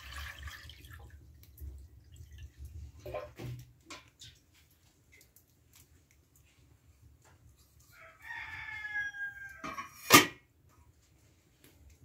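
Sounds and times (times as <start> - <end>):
rooster crowing: 7.9 - 10.0.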